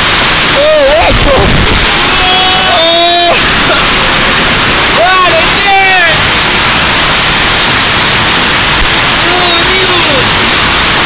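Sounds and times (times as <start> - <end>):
heavy hail and rain: 0.0 - 11.0
strong wind: 0.0 - 11.0.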